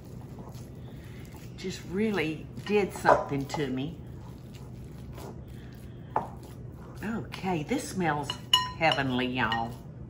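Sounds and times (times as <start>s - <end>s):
hands squishing raw meat: 0.0s - 8.3s.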